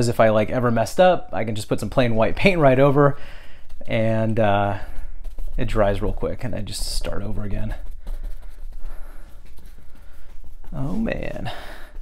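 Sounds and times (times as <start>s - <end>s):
bristle brush scratching on canvas: 0.2s - 12.0s.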